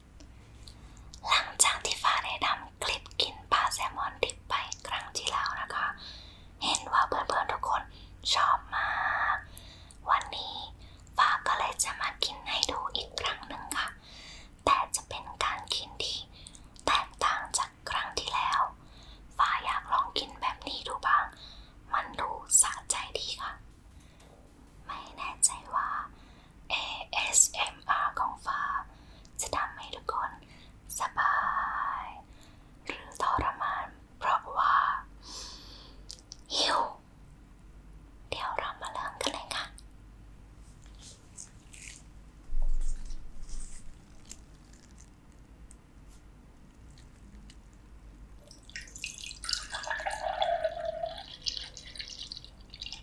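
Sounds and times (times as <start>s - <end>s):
woman whispering: 1.2s - 6.0s, 6.6s - 14.0s, 14.6s - 23.6s, 24.8s - 26.1s, 26.7s - 35.1s, 36.4s - 37.0s, 38.3s - 39.8s.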